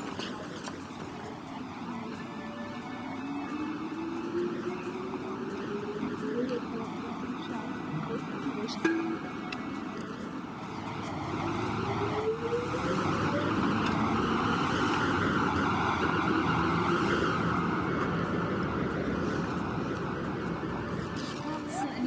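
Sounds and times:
traffic noise: 0.0 - 22.0.

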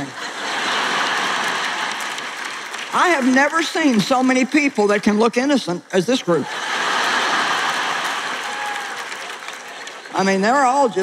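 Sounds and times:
audience laughing: 0.0 - 2.8, 6.3 - 10.1.

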